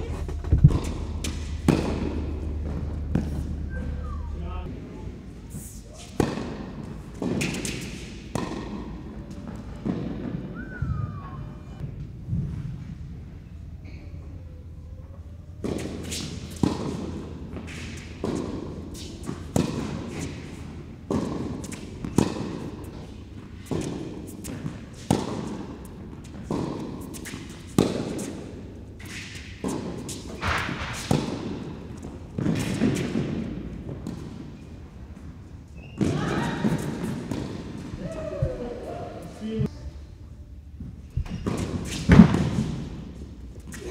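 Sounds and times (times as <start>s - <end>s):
racquet striking tennis ball: 0.0s - 3.9s, 6.0s - 10.5s, 15.6s - 34.6s, 35.8s - 37.9s, 41.3s - 43.2s
tennis ball bouncing: 0.0s - 4.0s, 6.0s - 10.5s, 15.6s - 35.0s, 35.8s - 38.6s.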